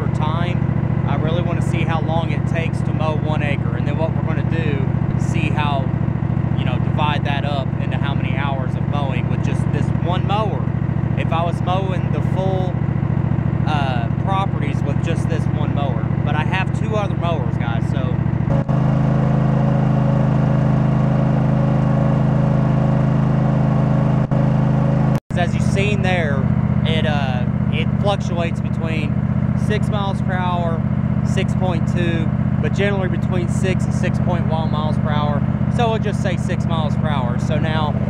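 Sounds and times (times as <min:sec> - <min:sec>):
man talking: 0:00.0 - 0:05.9, 0:06.6 - 0:12.8, 0:13.7 - 0:18.2, 0:25.3 - 0:38.0
mower engine running: 0:00.0 - 0:38.0.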